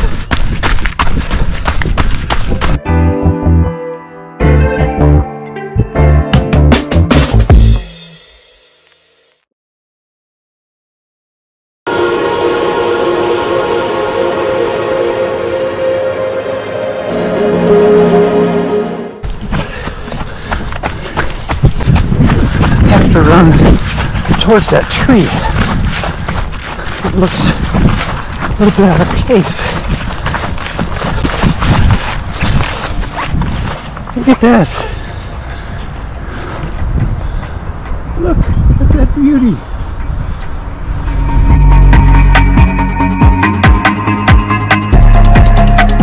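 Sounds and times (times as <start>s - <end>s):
wind noise on microphone: 0.0s - 2.8s, 19.2s - 34.2s, 35.8s - 42.9s
running footsteps on dirt trail: 0.0s - 2.9s, 19.2s - 38.7s
music: 2.6s - 9.4s, 11.9s - 19.2s, 41.1s - 46.0s.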